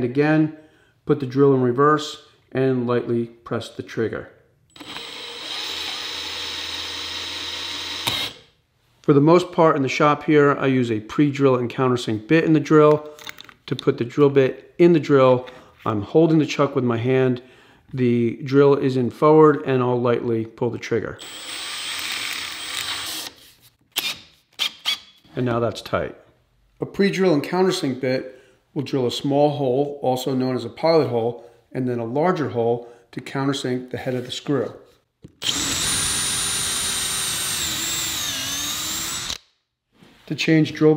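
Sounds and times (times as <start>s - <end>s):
drill motor whine: 4.7s - 8.4s, 35.4s - 39.4s
drill click: 4.7s - 8.5s, 35.2s - 39.5s.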